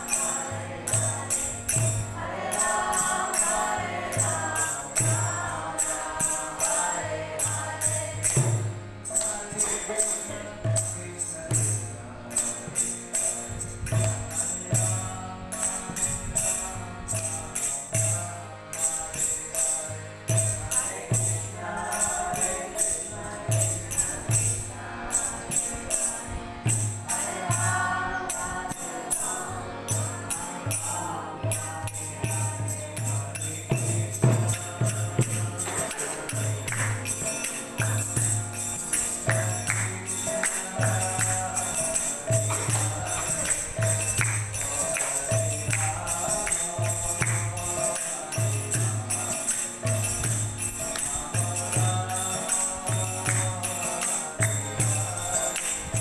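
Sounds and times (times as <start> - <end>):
group chanting: 0.0 - 8.6, 20.6 - 24.2, 27.0 - 38.0
group devotional chanting: 0.0 - 56.0
jingling metal hand percussion: 0.0 - 56.0.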